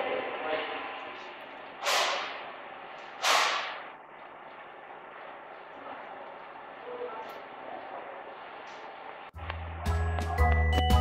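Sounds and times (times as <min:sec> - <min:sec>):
sharp smacks echoing: 0:01.8 - 0:04.0.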